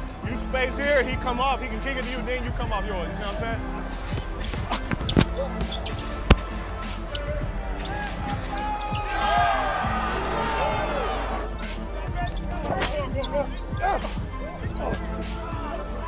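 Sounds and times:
crowd noise: 0:00.0 - 0:16.0
sneaker squeaks: 0:03.8 - 0:09.3, 0:11.4 - 0:15.4
basketball bouncing: 0:04.0 - 0:06.6.

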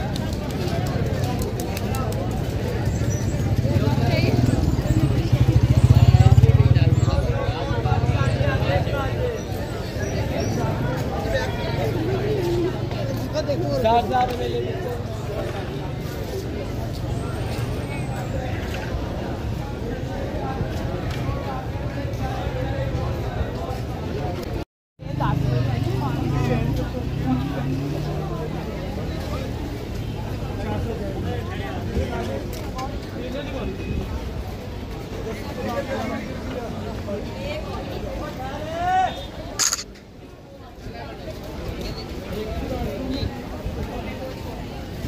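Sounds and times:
people talking: 0:00.0 - 0:45.0
motorcycle engine passing by: 0:03.3 - 0:08.8, 0:25.0 - 0:29.5.

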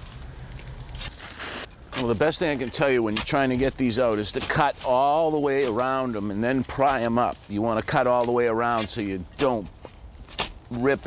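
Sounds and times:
shovel crunching and scraping soil: 0:00.0 - 0:11.0.

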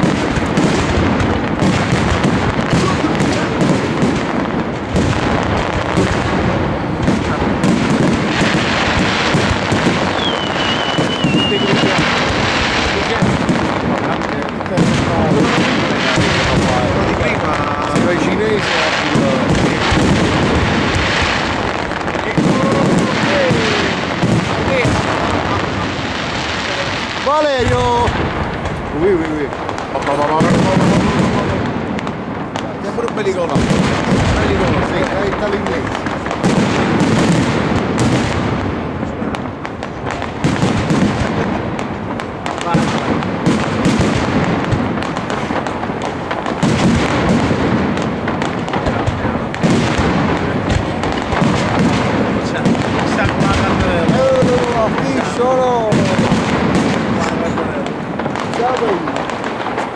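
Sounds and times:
fireworks shell bursts: 0:07.9 - 0:12.4.

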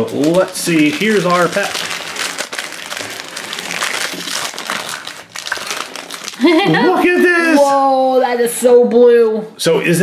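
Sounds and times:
foil wrapper crinkling: 0:00.0 - 0:06.7.

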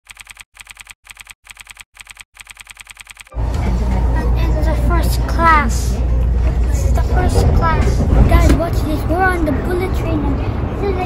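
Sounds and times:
keyboard typing clicks: 0:00.1 - 0:03.3
train cabin low rumble: 0:03.3 - 0:11.0.

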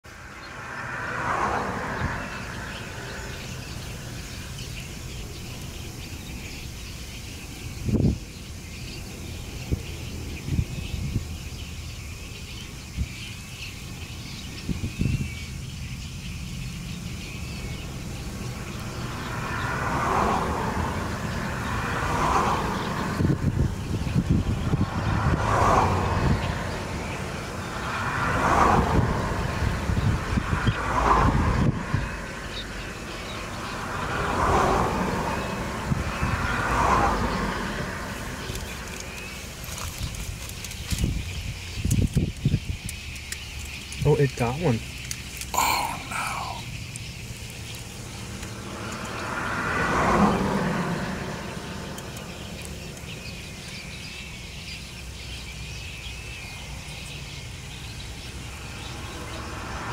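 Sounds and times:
vehicles passing: 0:00.0 - 0:59.9.

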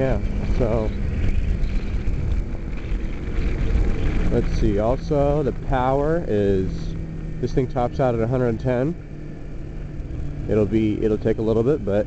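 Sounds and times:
motorcycle engine rumble: 0:00.0 - 0:12.0
wind buffeting microphone: 0:00.0 - 0:12.0.

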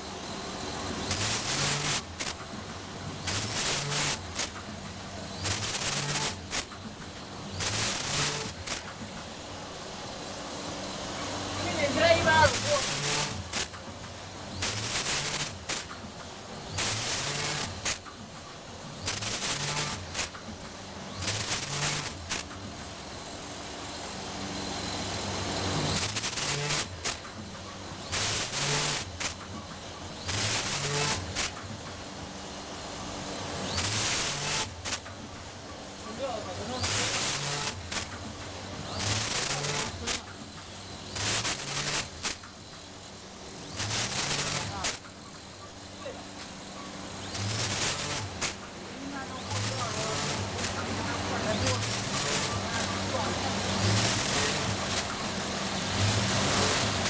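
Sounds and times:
packaging machine bursts: 0:01.0 - 0:02.5, 0:03.2 - 0:04.7, 0:05.3 - 0:06.8, 0:07.5 - 0:09.0, 0:12.0 - 0:13.8, 0:14.5 - 0:16.0, 0:16.6 - 0:18.0, 0:19.0 - 0:20.4, 0:21.1 - 0:22.6, 0:25.7 - 0:27.3, 0:28.0 - 0:29.4, 0:30.2 - 0:31.6, 0:33.6 - 0:35.1, 0:36.6 - 0:38.2, 0:38.8 - 0:40.3, 0:40.9 - 0:42.5, 0:43.6 - 0:45.1, 0:47.1 - 0:48.6, 0:49.4 - 0:57.0.

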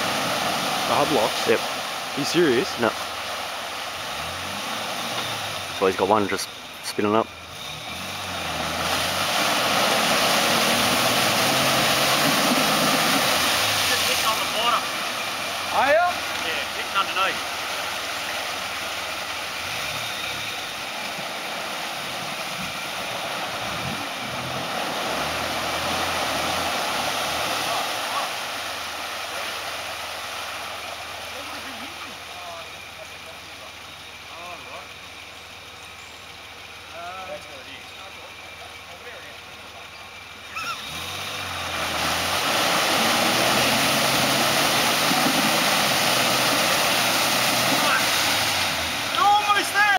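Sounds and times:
wheel churning through mud: 0:00.0 - 0:49.9
engine revving: 0:04.0 - 0:29.7, 0:36.8 - 0:49.9.

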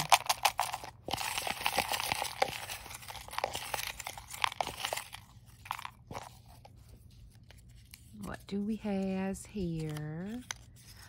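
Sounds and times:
paper slips rustling in plastic tub: 0:00.0 - 0:06.4.

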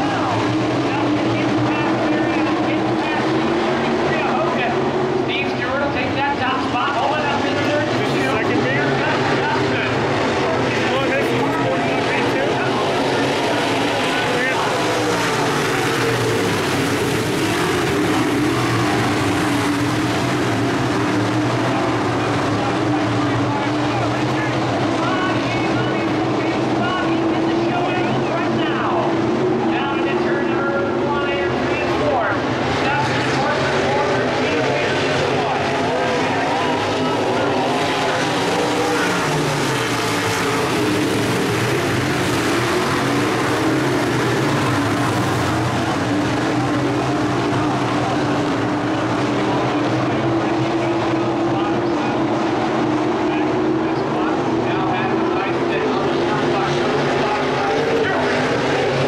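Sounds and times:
race car engines passing: 0:00.0 - 0:59.0.

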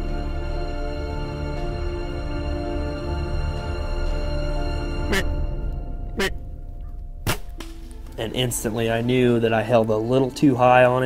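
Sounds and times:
held background music tone: 0:00.0 - 0:11.0
sharp hits with falling tail: 0:07.2 - 0:08.2.

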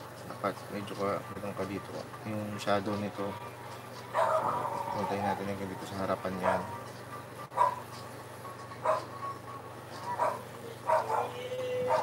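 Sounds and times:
dog barking: 0:04.1 - 0:05.1, 0:06.4 - 0:06.8, 0:07.5 - 0:07.8, 0:08.8 - 0:09.1, 0:10.1 - 0:12.0
dog whining: 0:04.2 - 0:05.4, 0:08.8 - 0:09.1, 0:10.0 - 0:12.0.

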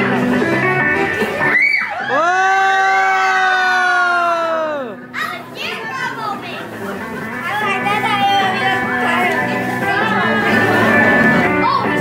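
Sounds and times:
children shouting together: 0:01.4 - 0:06.5
children's voices: 0:04.9 - 0:12.0.

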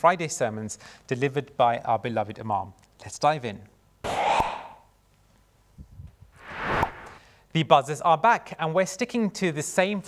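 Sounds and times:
whoosh transition effect: 0:06.3 - 0:07.2.

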